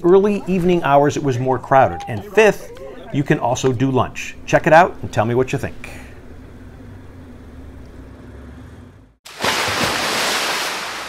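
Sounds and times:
low background hum: 0:00.0 - 0:09.2
ocean surf washing onto beach: 0:09.3 - 0:11.0.

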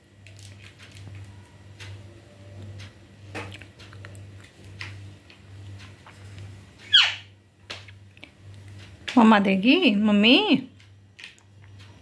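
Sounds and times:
parakeet squawk: 0:06.8 - 0:07.3.

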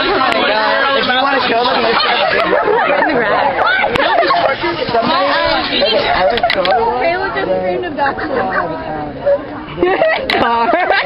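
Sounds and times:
young voices chattering: 0:00.0 - 0:11.0.

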